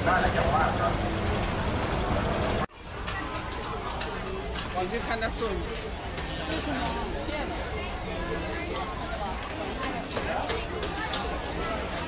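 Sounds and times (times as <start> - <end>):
faint voices: 0.0 - 12.0
street market hubbub: 0.0 - 12.0.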